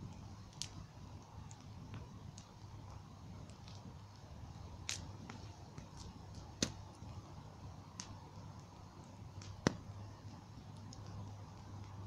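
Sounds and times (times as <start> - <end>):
bonfire crackling: 0.0 - 12.0
faint low steady hum: 0.0 - 12.0.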